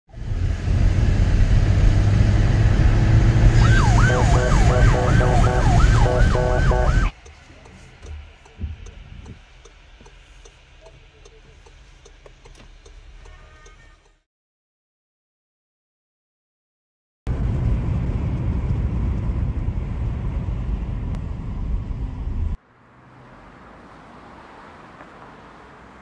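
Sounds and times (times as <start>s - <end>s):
car engine and road noise: 0.1s - 14.2s, 17.3s - 26.0s
police siren yelping: 3.4s - 7.2s
faint evenly spaced ticks: 6.1s - 14.2s.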